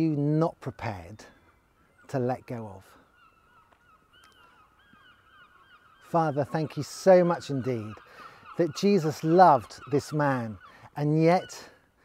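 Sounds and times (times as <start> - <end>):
distant birds calling: 0.0 - 12.0.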